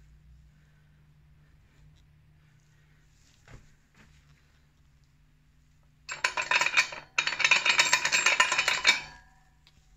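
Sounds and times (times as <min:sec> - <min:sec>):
dense clattering and clinking: 0:06.1 - 0:09.4.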